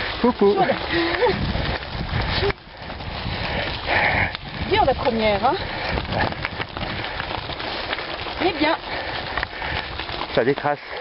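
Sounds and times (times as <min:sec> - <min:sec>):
bikes rattling over stones: 0:00.0 - 0:11.0
tyres crunching on gravel: 0:00.0 - 0:11.0
wind on microphone: 0:00.9 - 0:07.8.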